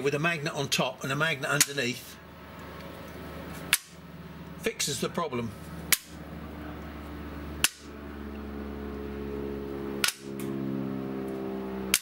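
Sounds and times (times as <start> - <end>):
low machine hum: 0.0 - 12.0
magnets snapping onto board: 10.0 - 10.3.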